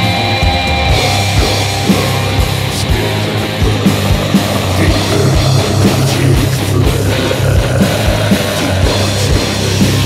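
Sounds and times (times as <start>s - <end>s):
distorted guitars and bass: 0.0s - 10.0s.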